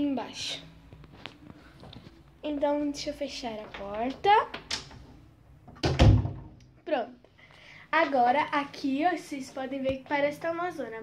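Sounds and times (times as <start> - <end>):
door closing with a thud: 5.7 - 6.6.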